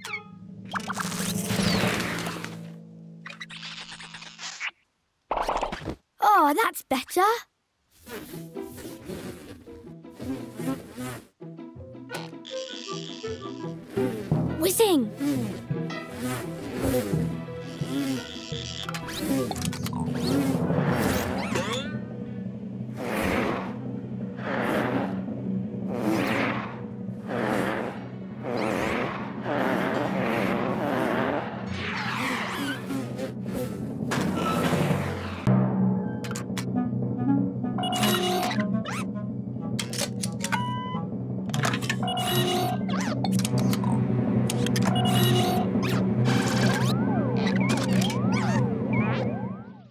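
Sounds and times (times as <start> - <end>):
background music: 8.0 - 49.9.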